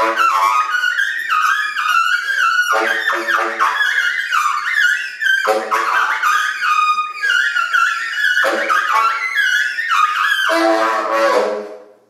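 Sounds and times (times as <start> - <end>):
tenor saxophone improvising: 0.0 - 11.9.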